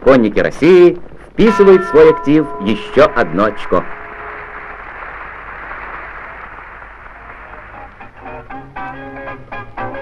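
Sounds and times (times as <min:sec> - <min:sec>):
stadium crowd noise: 0:01.4 - 0:08.8.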